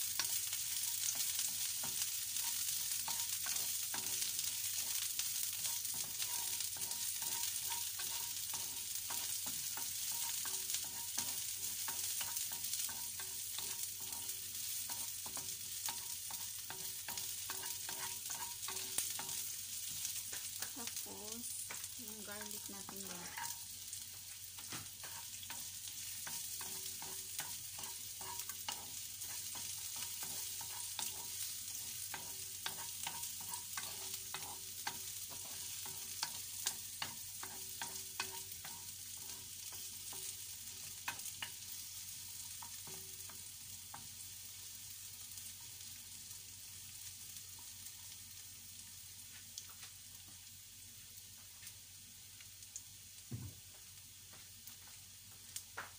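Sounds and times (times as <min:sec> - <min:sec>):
onions sizzling in oil: 0:00.0 - 0:55.9.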